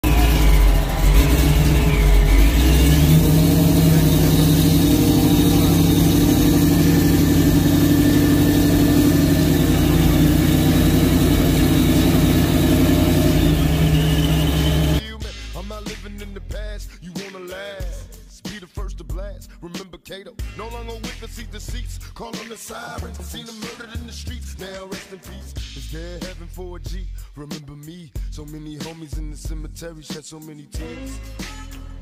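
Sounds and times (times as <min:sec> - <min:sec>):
loud car engine exhaust: 0:00.0 - 0:15.0
hip-hop music: 0:00.0 - 0:32.0.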